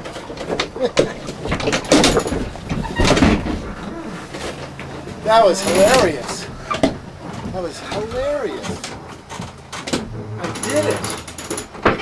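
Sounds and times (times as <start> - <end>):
clicks and knocks: 0.0 - 3.8
person's voice: 5.2 - 6.5.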